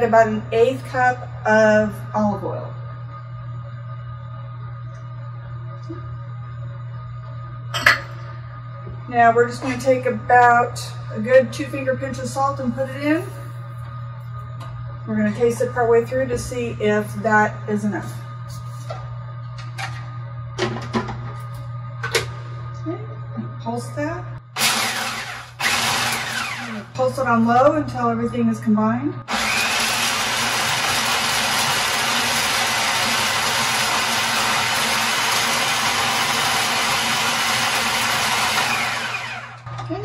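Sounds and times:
steady low hum: 0.0 - 29.3
food processor chopping: 24.6 - 26.8, 29.3 - 39.6.

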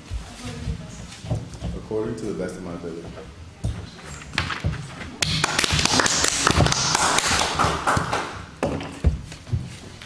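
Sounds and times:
audience applause: 5.4 - 8.4.

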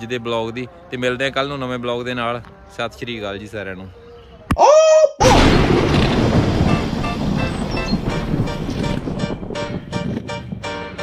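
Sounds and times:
loud boom-like hit: 5.2 - 9.9.

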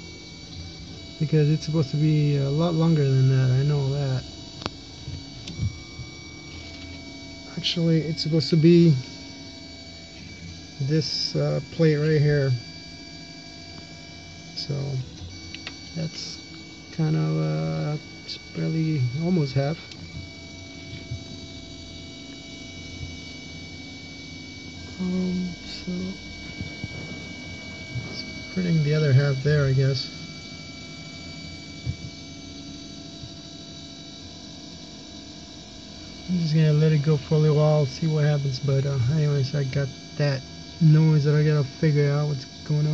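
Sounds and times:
low hum: 0.0 - 42.9
printer motors whining: 0.0 - 42.9.

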